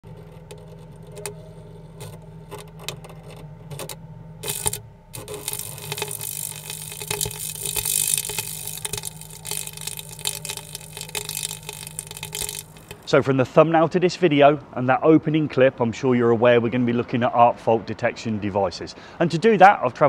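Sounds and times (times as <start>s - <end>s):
electrical arc crackling: 0.0s - 13.2s
low hum: 0.0s - 13.2s.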